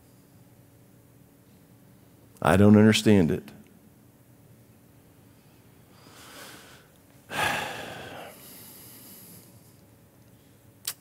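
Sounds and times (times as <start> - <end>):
man exhaling: 6.1 - 9.3.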